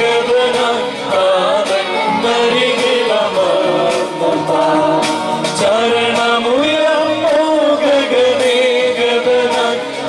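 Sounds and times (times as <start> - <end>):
electronic keyboard: 0.0 - 10.0.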